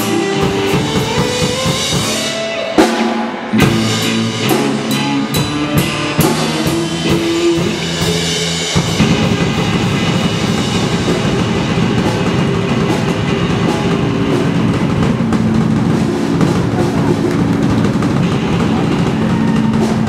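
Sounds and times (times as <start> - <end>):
rock band playing: 0.0 - 20.0
bass drum pounding: 3.6 - 20.0.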